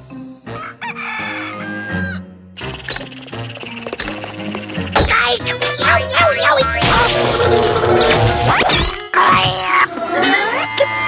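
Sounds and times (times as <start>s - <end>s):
rooster crowing: 0.5s - 2.2s
cartoon music: 1.5s - 11.0s.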